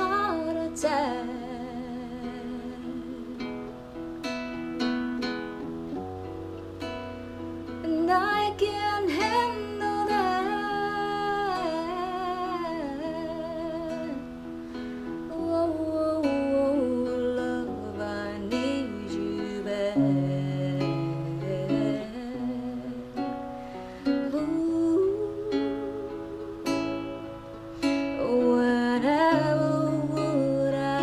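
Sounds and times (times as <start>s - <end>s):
woman singing with vibrato: 0.0s - 3.7s, 7.7s - 31.0s
acoustic guitar: 0.0s - 31.0s.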